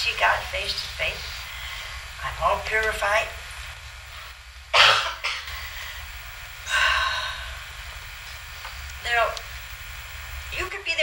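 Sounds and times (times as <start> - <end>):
steady low hum: 0.0 - 11.0
sharp intake of breath: 5.4 - 7.9
sighing exhale: 5.5 - 7.7.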